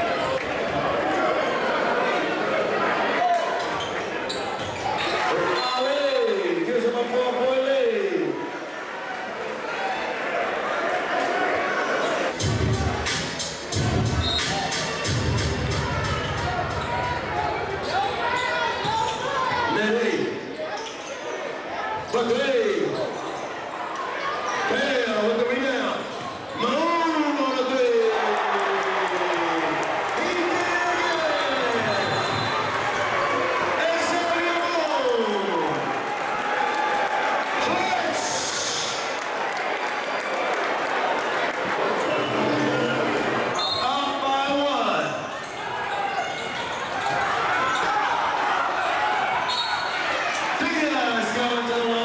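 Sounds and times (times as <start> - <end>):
crowd noise: 0.0 - 52.0.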